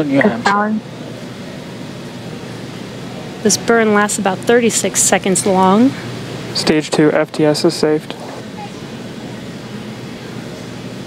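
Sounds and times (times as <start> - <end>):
steady rushing hiss: 0.8 - 11.0.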